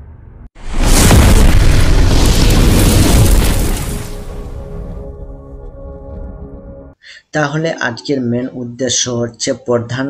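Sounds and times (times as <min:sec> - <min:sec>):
deep cinematic boom: 0:00.0 - 0:05.6.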